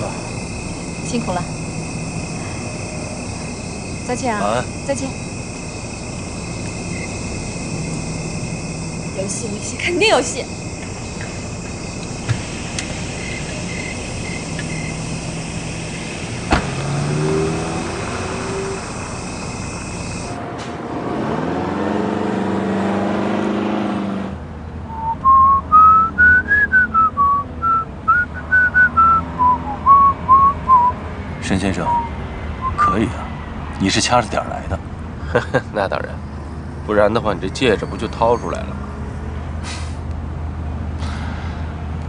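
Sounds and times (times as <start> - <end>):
car pulling away: 0.0 - 32.1
car door shutting: 16.0 - 17.0
whistled tune: 24.9 - 31.0, 31.8 - 33.0.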